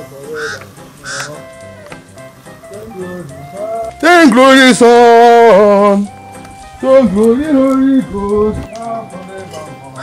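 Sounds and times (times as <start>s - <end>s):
background music: 0.0s - 10.0s
goose-like honks: 0.3s - 1.4s.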